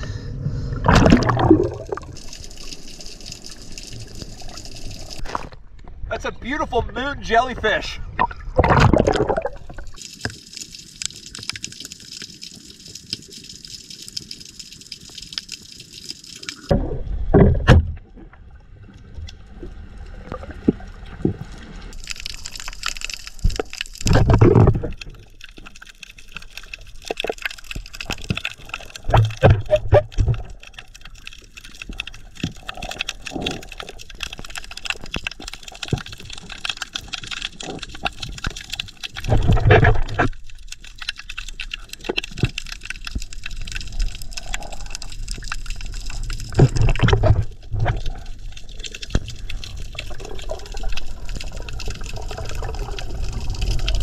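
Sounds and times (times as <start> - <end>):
underwater rushing and bubbling: 0.0 - 6.1, 7.0 - 54.0.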